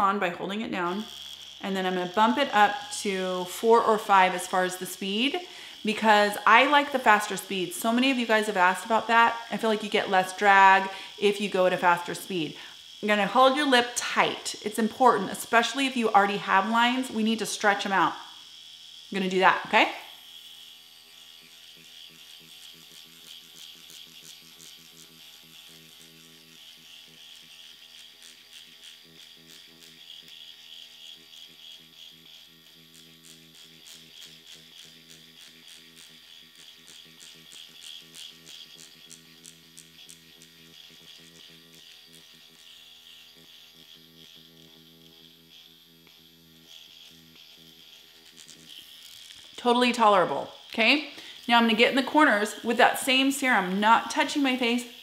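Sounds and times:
microneedling pen motor buzz: 0:00.0 - 0:55.0
rapid fine needle ticking: 0:00.0 - 0:55.0.

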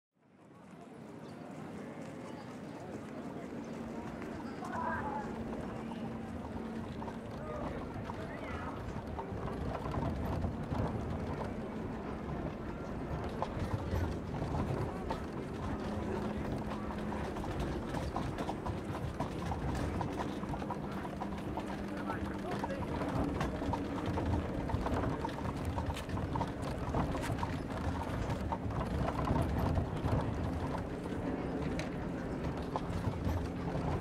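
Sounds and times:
street noise: 0:00.2 - 0:34.0
horse hooves clip-clopping: 0:01.7 - 0:34.0
carriage wheels rattling: 0:06.3 - 0:34.0.

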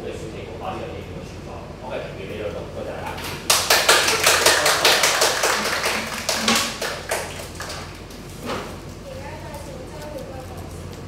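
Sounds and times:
small group applauding: 0:03.3 - 0:08.3.

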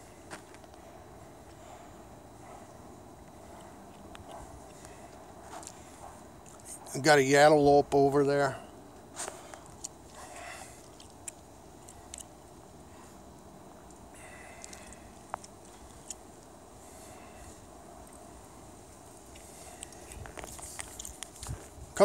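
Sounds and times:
footsteps on snow and ice: 0:19.3 - 0:21.8.

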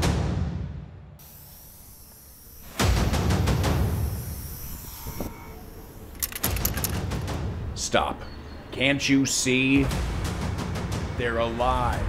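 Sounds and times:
spray can hissing: 0:01.2 - 0:07.2.

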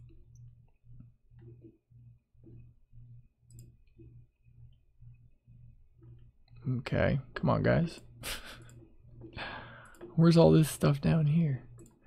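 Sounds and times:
low hum: 0:00.0 - 0:12.0
computer mouse clicks: 0:03.4 - 0:05.4, 0:08.0 - 0:10.2, 0:11.7 - 0:12.0.

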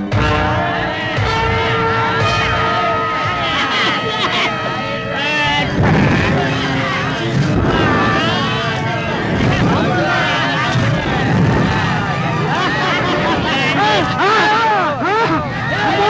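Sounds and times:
low rumble: 0:00.0 - 0:14.3
crowd screaming and shouting: 0:00.0 - 0:16.0
crash: 0:05.5 - 0:13.4.

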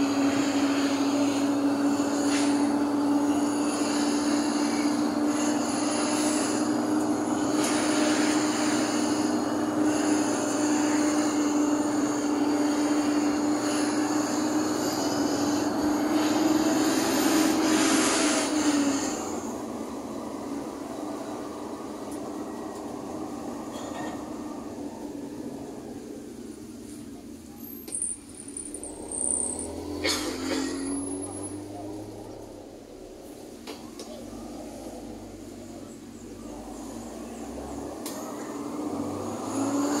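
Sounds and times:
loud steady whine: 0:00.0 - 0:40.0
vehicle engine and road noise: 0:00.0 - 0:40.0.

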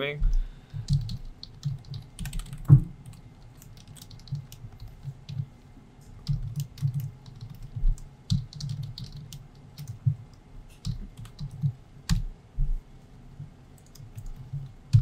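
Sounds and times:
typing on computer keyboard: 0:00.7 - 0:05.5, 0:06.2 - 0:10.2, 0:10.8 - 0:12.3, 0:13.8 - 0:15.0.

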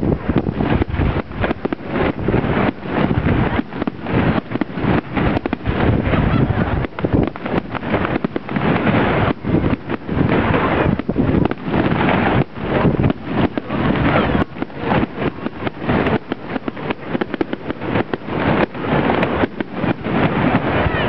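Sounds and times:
fireworks launching and bursting: 0:00.0 - 0:21.0.

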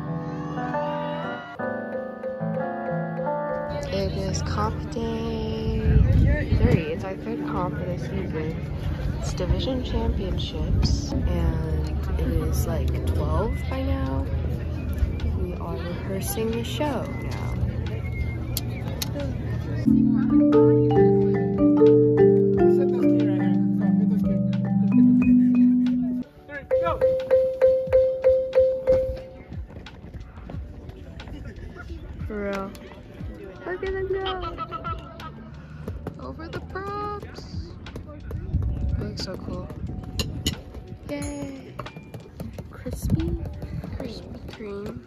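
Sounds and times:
low outdoor background: 0:01.5 - 0:45.0
marimbas and vibraphones chords: 0:01.6 - 0:05.7, 0:19.8 - 0:29.4
people talking indistinctly: 0:03.2 - 0:45.0
low microphone rumble: 0:04.0 - 0:16.3.

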